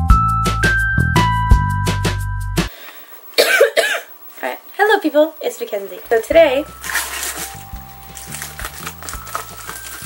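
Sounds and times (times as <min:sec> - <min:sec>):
woman talking: 0:04.4 - 0:06.7.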